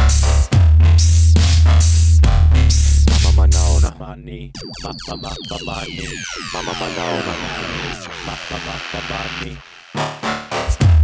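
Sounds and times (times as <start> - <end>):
synth tones gliding downward: 4.6 - 9.5.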